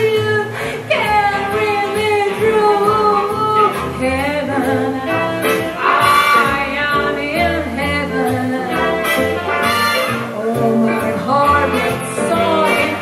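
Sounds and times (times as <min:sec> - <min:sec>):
nylon-string guitar: 0:00.0 - 0:13.0
woman singing jazz: 0:00.0 - 0:13.0.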